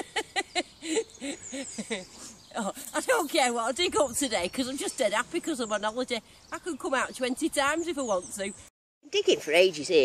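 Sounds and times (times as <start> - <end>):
person laughing: 0.0 - 2.1.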